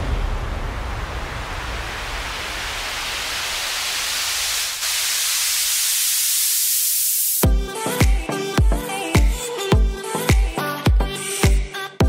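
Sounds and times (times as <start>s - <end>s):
low rumble: 0.0s - 4.2s
white-noise riser hiss: 0.0s - 7.4s.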